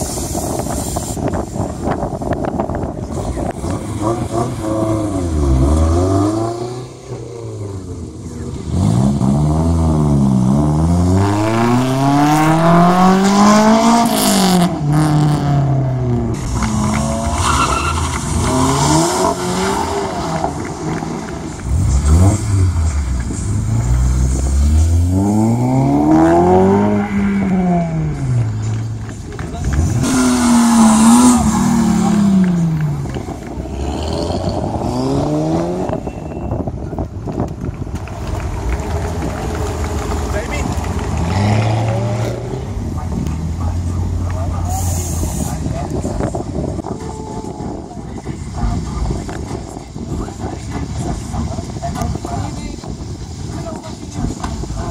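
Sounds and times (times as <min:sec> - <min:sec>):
car engines revving: 0:00.0 - 0:54.9
tyre squeal: 0:17.2 - 0:18.8, 0:36.0 - 0:36.7.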